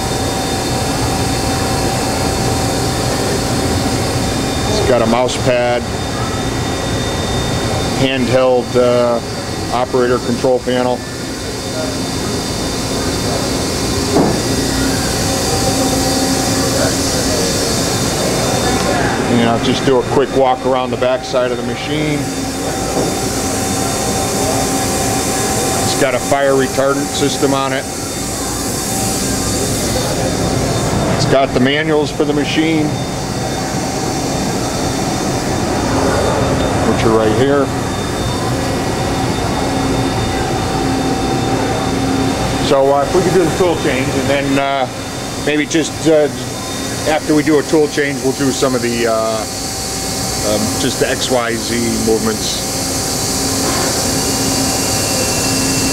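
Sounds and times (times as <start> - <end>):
machinery hum and rumble: 0.0 - 55.9
brief knock: 14.2 - 14.4.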